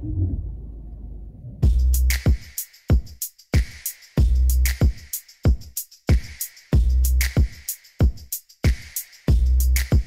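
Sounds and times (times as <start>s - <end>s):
low steady bass layer: 0.0s - 2.1s
electronic beat with bass drum: 1.6s - 10.0s.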